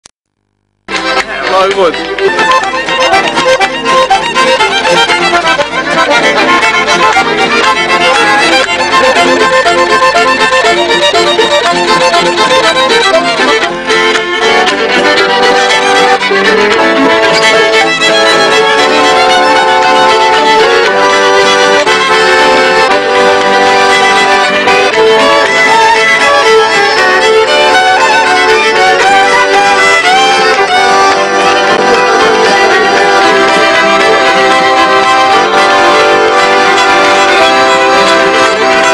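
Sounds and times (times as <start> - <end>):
fiddles playing folk tune: 0.9 - 38.9.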